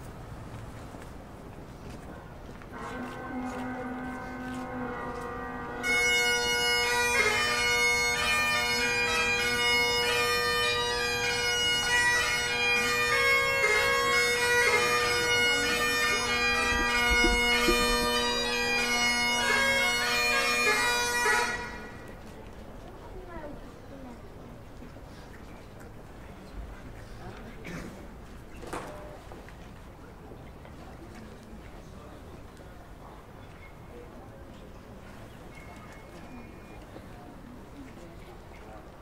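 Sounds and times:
bagpipe drones: 0:02.7 - 0:22.1
bagpipe chanter melody: 0:02.8 - 0:22.1.

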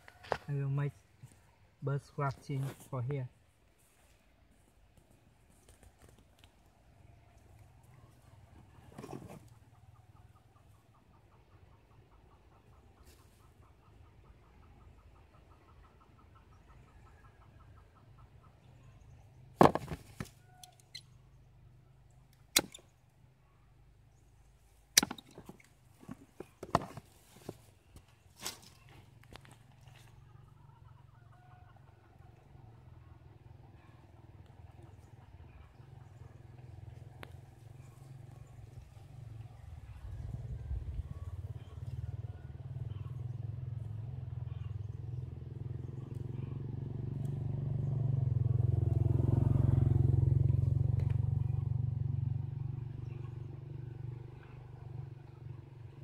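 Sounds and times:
blade snapping into wood: 0:22.5 - 0:22.8, 0:25.0 - 0:25.5.

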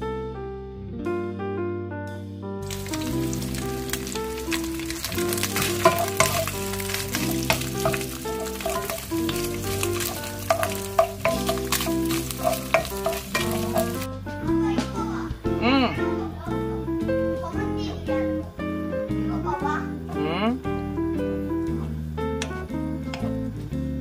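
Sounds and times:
background music: 0:00.0 - 0:24.0
ham sizzling in oil: 0:02.6 - 0:14.2
wooden spoon scraping pan: 0:02.7 - 0:14.1.

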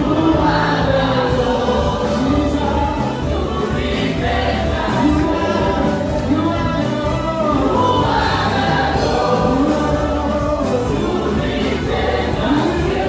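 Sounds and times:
choir singing gospel song: 0:00.0 - 0:13.0
live band with drums and bass: 0:00.0 - 0:13.0.

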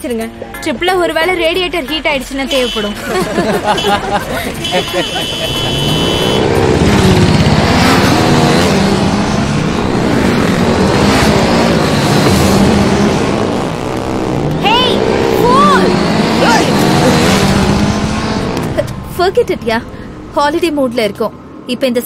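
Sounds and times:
motorcycle engines revving: 0:00.0 - 0:22.0.

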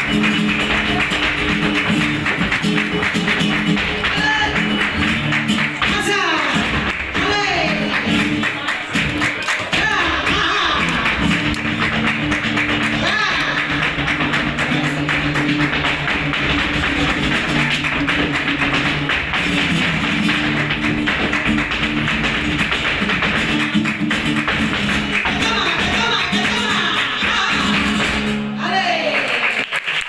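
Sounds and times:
hand-clapping: 0:00.0 - 0:28.4, 0:29.1 - 0:30.0
flamenco footwork heel strikes: 0:00.0 - 0:28.7
flamenco guitar: 0:00.0 - 0:29.6.

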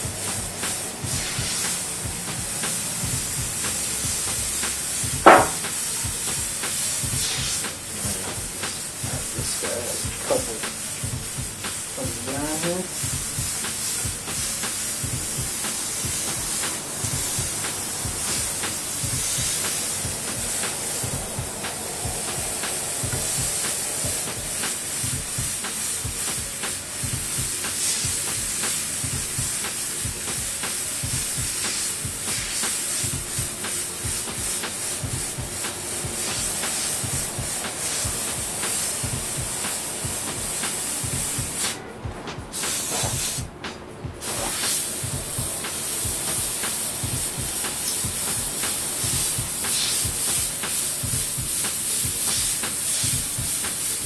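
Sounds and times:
airbrush spraying hiss: 0:00.0 - 0:54.0.

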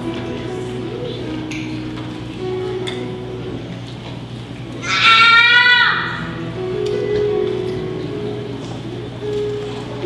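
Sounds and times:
band playing soft instrumental music: 0:00.0 - 0:05.3, 0:06.2 - 0:10.0.

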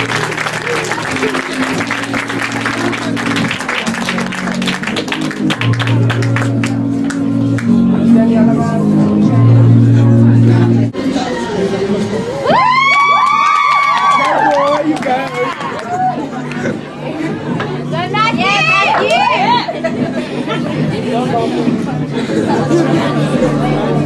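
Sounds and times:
audience chatter: 0:00.0 - 0:24.0
background music: 0:00.0 - 0:24.0
high-pitched whoops and shrieks: 0:12.4 - 0:14.8.

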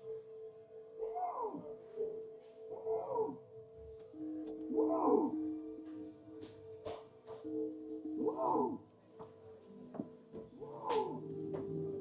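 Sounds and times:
recorded animal call: 0:00.0 - 0:09.0, 0:10.4 - 0:12.0.

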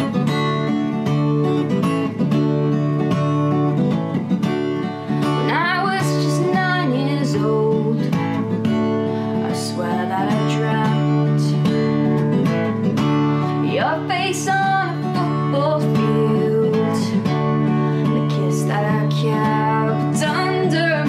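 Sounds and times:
strummed acoustic guitar: 0:00.0 - 0:21.0
woman singing: 0:05.1 - 0:21.0.

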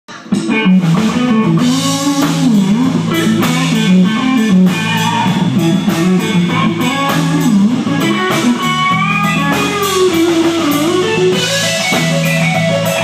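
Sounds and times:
country electric guitar: 0:00.1 - 0:13.0
steady drum beat: 0:00.1 - 0:13.0
bass line: 0:00.3 - 0:13.0.

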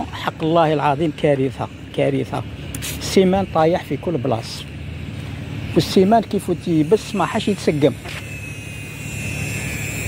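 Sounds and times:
jet engines rumbling and whining: 0:00.0 - 0:10.0.

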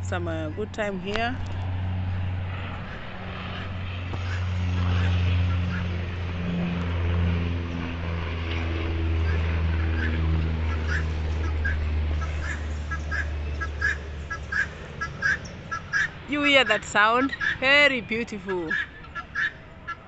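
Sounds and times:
low engine drone: 0:00.0 - 0:20.0
guineafowl calling: 0:03.6 - 0:05.9, 0:09.2 - 0:17.6, 0:18.4 - 0:20.0.

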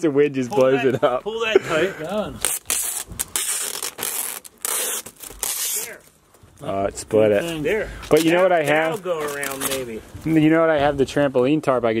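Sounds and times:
packing tape pulled from dispenser: 0:02.4 - 0:06.1.

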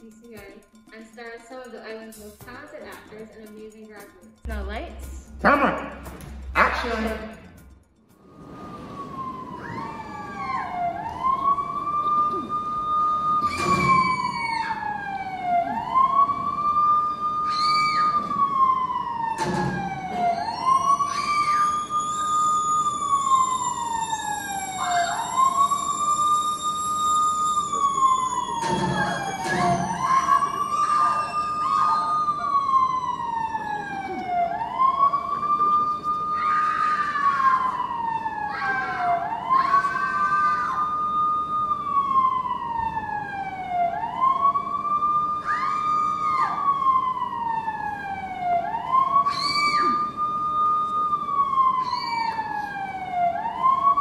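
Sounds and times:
siren wailing: 0:02.5 - 0:54.0.

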